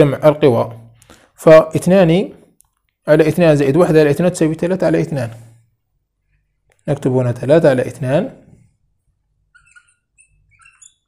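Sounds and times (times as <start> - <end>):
marker squeaking on whiteboard: 9.3 - 11.0.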